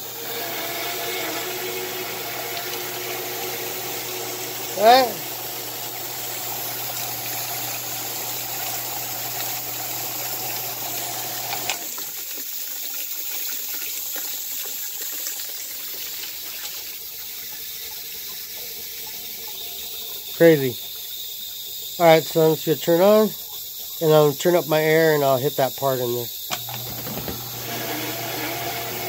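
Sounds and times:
sump pump humming: 0.0s - 12.4s, 15.6s - 29.0s
pump switch click: 26.5s - 27.6s.

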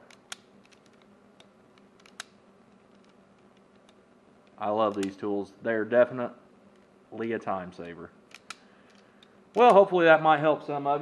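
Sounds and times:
wire stripper clicking: 0.0s - 5.2s, 7.8s - 9.8s.

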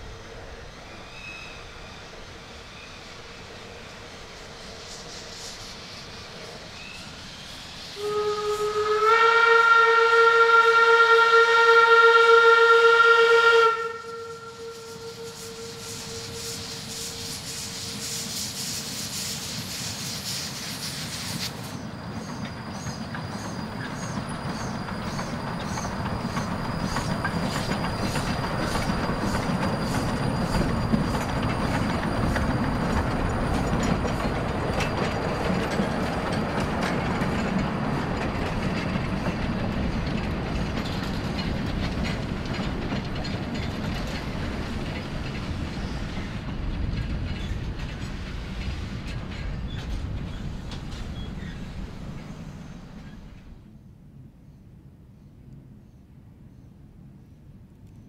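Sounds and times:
steam hissing: 0.0s - 9.6s, 13.9s - 46.8s
steam locomotive whistle: 7.9s - 18.4s
train clattering over rails: 13.8s - 53.7s.

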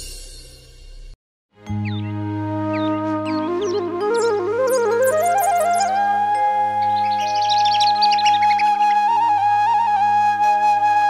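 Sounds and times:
flute holding long note: 2.1s - 11.0s.

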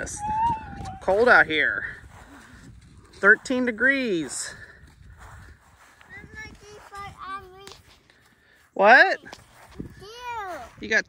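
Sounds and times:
footsteps crunching on frosty grass: 0.2s - 10.9s
child's faint high voice: 6.0s - 7.7s, 10.0s - 10.8s.

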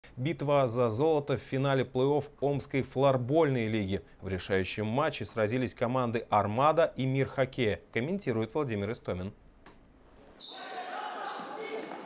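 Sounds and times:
shoes squeaking on court floor: 10.1s - 12.0s
players' voices and shouts: 10.4s - 12.0s.

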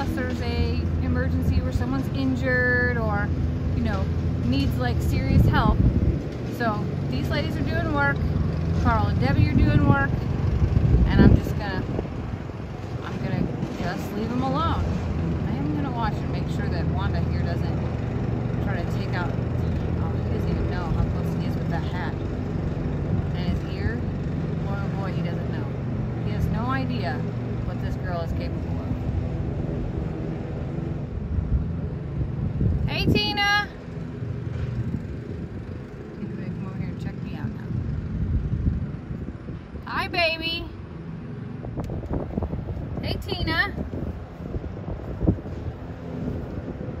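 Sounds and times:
riding lawn mower engine running: 0.0s - 47.0s.

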